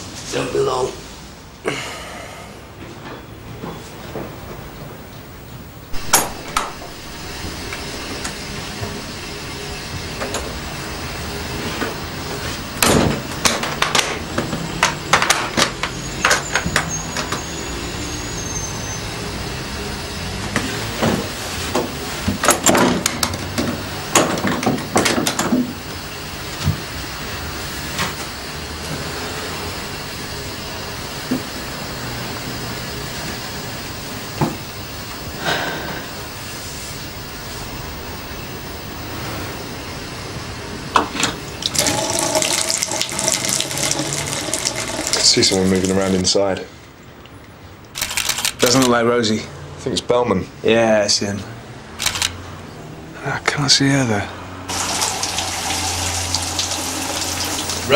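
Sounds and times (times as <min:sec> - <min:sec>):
shower running: 0:05.9 - 0:15.1, 0:41.4 - 0:46.8, 0:54.7 - 0:57.9
sharp click: 0:52.0 - 0:52.4.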